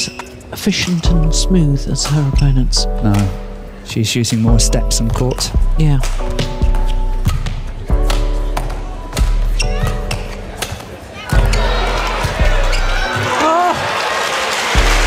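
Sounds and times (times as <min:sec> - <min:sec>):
crowd noise: 0:00.0 - 0:15.0
racket hitting shuttlecock: 0:06.3 - 0:11.5.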